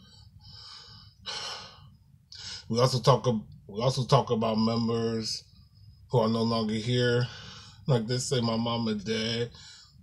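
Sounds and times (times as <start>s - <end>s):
man breathing: 0.0s - 2.7s, 7.2s - 7.9s, 9.5s - 10.0s.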